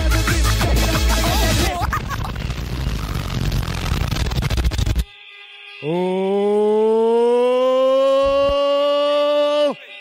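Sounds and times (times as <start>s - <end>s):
buzzy synthesizer note rising: 0.4s - 5.1s.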